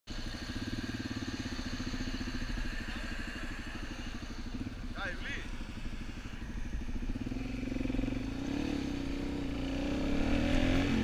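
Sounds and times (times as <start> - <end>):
motorcycle engine idling: 0.1 - 11.0.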